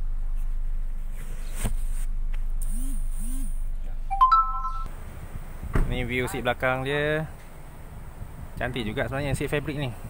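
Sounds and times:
electronic chime rising notes: 4.1s - 4.9s.

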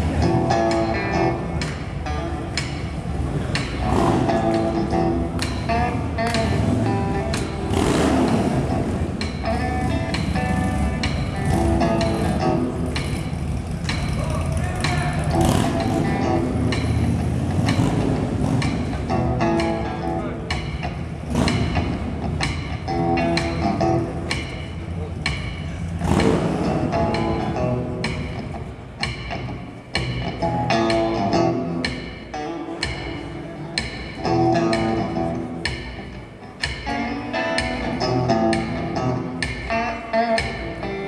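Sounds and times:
live rock band playing: 0.0s - 25.0s, 25.9s - 41.0s
motorcycle engine revving: 0.0s - 32.1s.

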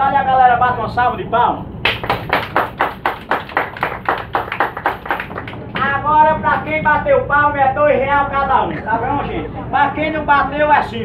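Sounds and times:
hand clapping: 1.8s - 5.9s.

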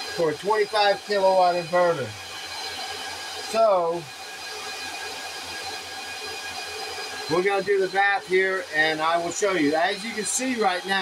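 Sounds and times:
cooling fans whooshing: 0.0s - 11.0s
faint high whines: 0.0s - 11.0s.

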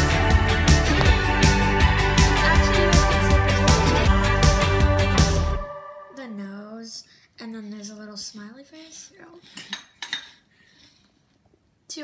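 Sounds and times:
dishes clinking: 9.5s - 10.5s.

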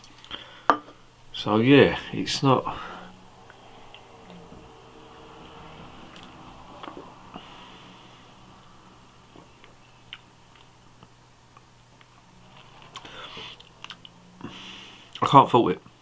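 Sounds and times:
low hum: 0.9s - 15.1s.

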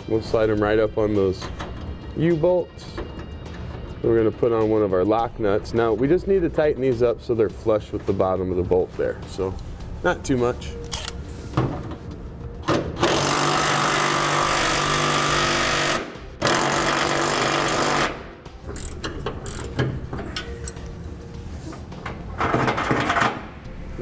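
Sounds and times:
wrench clicking on nuts: 18.7s - 20.8s.

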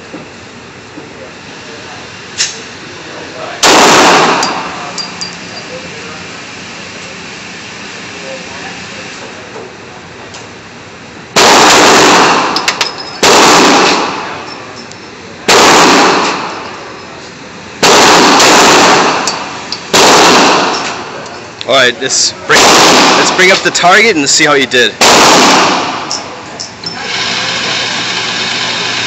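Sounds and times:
handgun shots echoing: 3.6s - 4.7s, 11.4s - 14.3s, 15.5s - 16.6s, 17.8s - 21.0s, 22.6s - 23.3s, 25.0s - 26.2s.

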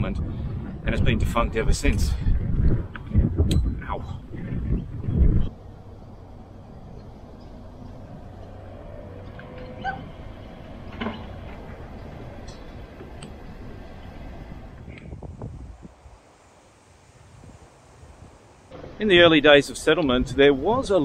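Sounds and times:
faint outdoor background: 0.0s - 21.0s
wind rumbling on microphone: 0.0s - 21.0s.

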